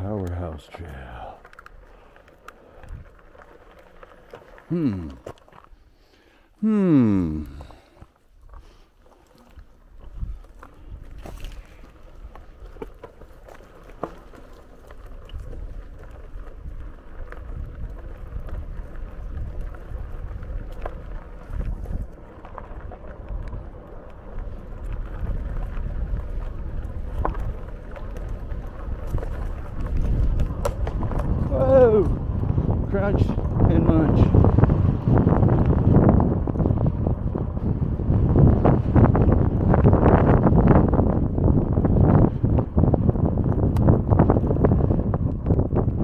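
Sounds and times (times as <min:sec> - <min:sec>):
wind buffeting microphone: 0:00.0 - 0:05.2, 0:09.4 - 0:46.0
bike rumbling on dirt trail: 0:00.0 - 0:46.0.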